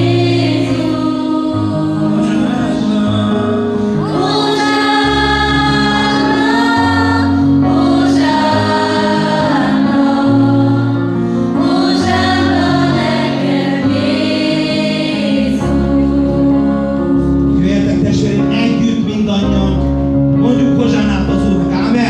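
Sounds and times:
many voices singing a hymn: 0.0s - 18.1s.

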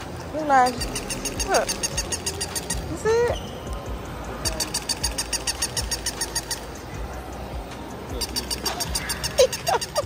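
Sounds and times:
walking toy motors clicking: 0.0s - 3.3s, 4.5s - 6.8s.

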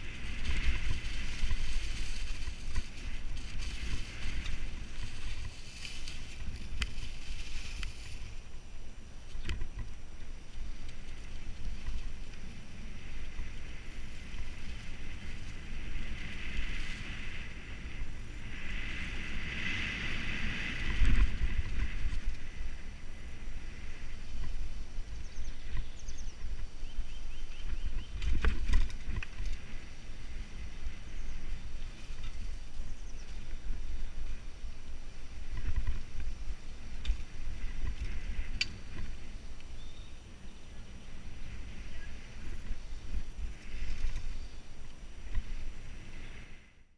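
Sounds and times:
bike tyres rolling on leaves: 0.0s - 46.7s
wind buffeting microphone: 0.0s - 46.7s
bike rattling clicks: 9.2s - 10.0s, 27.6s - 29.7s.

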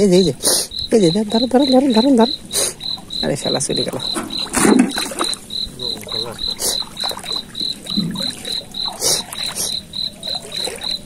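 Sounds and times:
crickets chirping: 0.0s - 11.0s
muffled voices: 5.7s - 6.8s.

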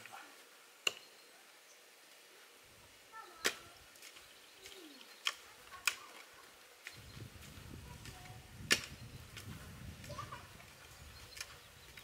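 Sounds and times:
hatchet chopping into wood: 0.8s - 1.0s, 8.6s - 9.0s.

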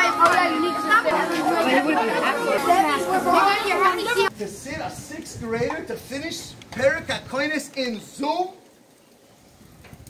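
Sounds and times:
babble of boys talking: 0.0s - 4.3s.

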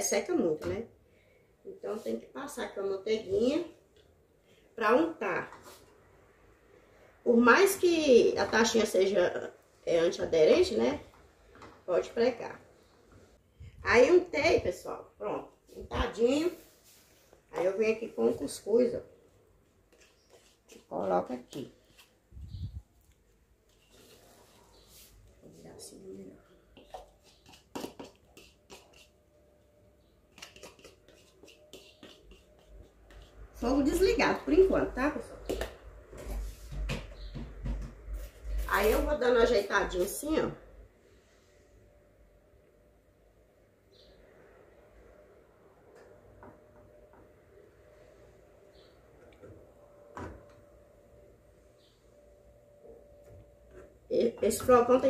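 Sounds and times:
spoon scraping plastic bowl: 19.9s - 22.2s, 26.8s - 29.3s, 30.3s - 34.1s.

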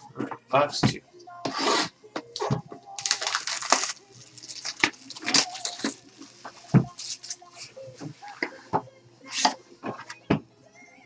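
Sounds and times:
wrapping tearing: 3.0s - 7.5s.

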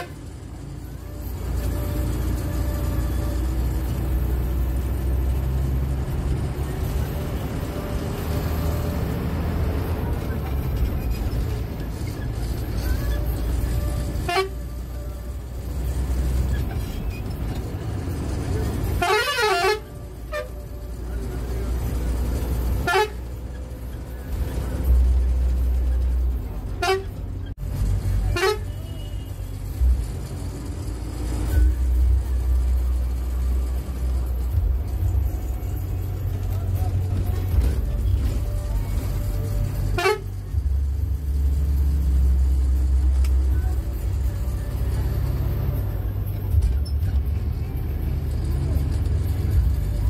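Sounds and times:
bus horn toots: 0.0s - 0.5s, 6.2s - 17.6s, 18.6s - 20.9s, 22.3s - 24.1s, 26.0s - 29.8s, 34.4s - 40.8s
diesel bus engine running: 0.0s - 50.0s.

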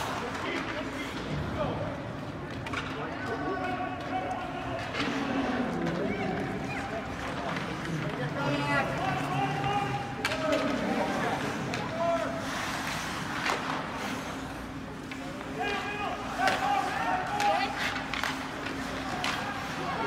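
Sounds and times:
hockey sticks and puck clacking: 0.0s - 20.0s
low rink hum: 0.0s - 20.0s.

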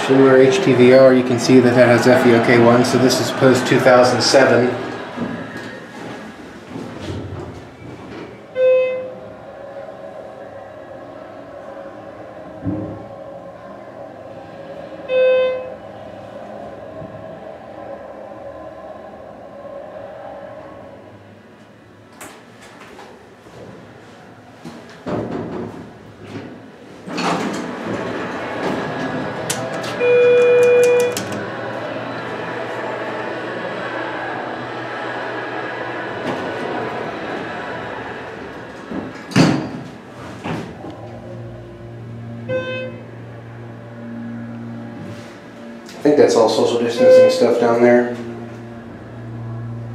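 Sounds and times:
elevator door machinery: 0.0s - 23.3s, 24.8s - 49.9s
elevator mechanical hum: 0.0s - 49.9s
long electronic tone: 8.4s - 21.3s, 29.5s - 39.2s, 40.8s - 49.9s.

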